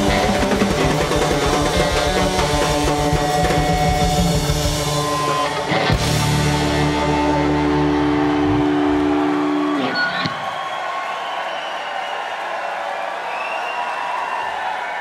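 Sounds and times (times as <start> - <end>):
rock band chord on guitars: 0.0 - 10.4
crowd cheering and whistling: 0.0 - 15.0.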